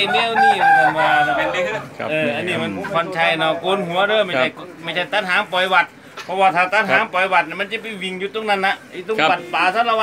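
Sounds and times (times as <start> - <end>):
rooster crowing: 0.0 - 1.9.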